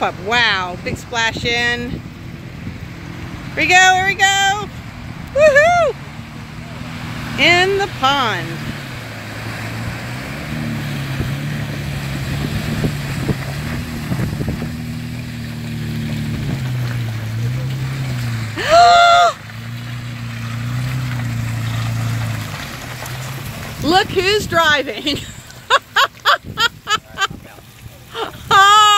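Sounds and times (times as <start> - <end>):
suv engine under load: 0.0 - 28.9
person whooping: 5.3 - 6.0, 18.6 - 19.4, 28.2 - 28.9.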